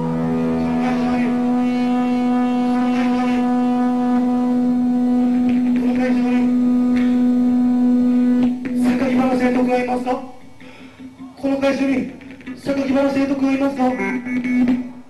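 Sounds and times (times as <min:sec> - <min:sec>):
amplified low drone: 0:00.0 - 0:10.6
man shouting into a microphone: 0:00.4 - 0:04.0, 0:05.6 - 0:06.6, 0:08.7 - 0:10.3.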